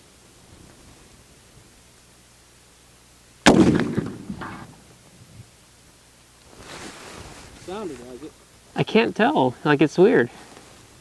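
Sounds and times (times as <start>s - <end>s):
rifle shot echoing: 3.4s - 5.0s.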